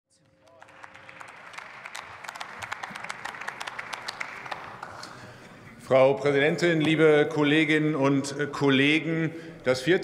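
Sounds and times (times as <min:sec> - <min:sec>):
people applauding: 0:00.1 - 0:05.6.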